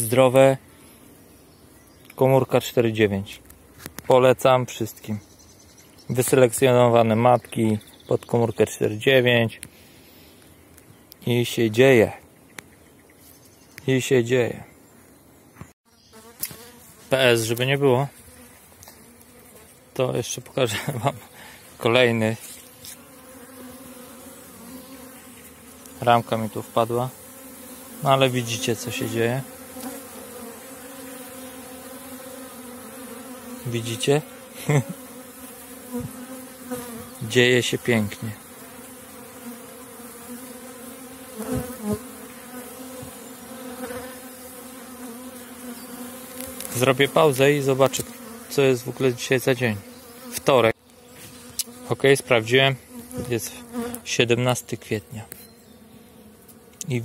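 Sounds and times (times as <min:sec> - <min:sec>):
bees buzzing: 0:14.8 - 0:57.0.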